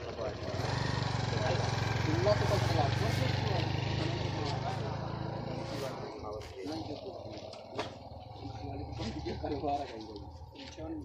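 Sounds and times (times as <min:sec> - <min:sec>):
men talking indistinctly: 0:00.0 - 0:11.0.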